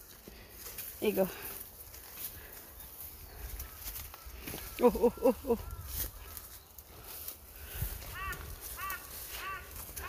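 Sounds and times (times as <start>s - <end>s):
crackles and rustles of leaves: 0.0s - 10.0s
footsteps through undergrowth: 0.0s - 10.0s.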